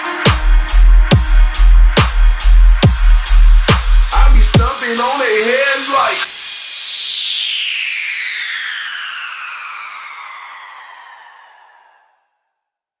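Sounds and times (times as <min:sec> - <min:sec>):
synth tone gliding down: 0:05.0 - 0:12.3.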